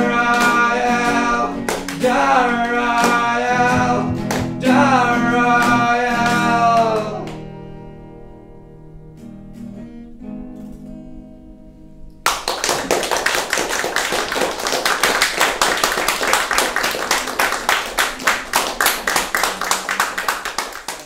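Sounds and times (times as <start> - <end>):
acoustic guitar chord ringing: 0.0 - 6.8
people applauding: 0.3 - 4.7, 12.2 - 21.0.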